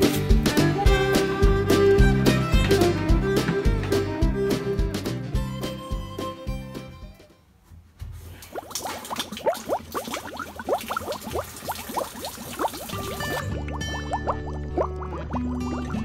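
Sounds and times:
guitar music with bass: 0.0s - 7.2s, 13.0s - 16.0s
water gurgling down a drain: 8.5s - 16.0s.

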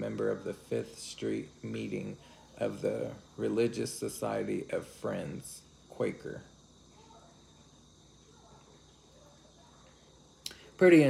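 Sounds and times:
faint high-pitched whine: 0.0s - 11.0s.

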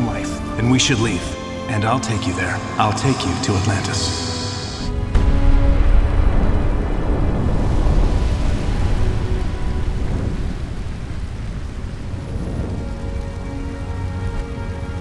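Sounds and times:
faint sustained music tones: 0.0s - 15.0s
deep rumbling: 0.4s - 15.0s.

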